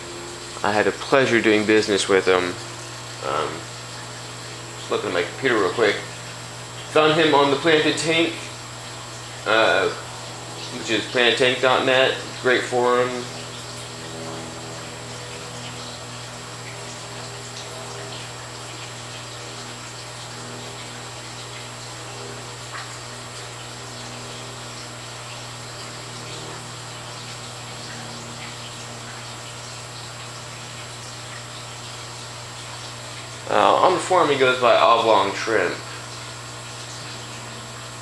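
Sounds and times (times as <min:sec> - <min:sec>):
aquarium equipment hum: 0:00.0 - 0:38.0.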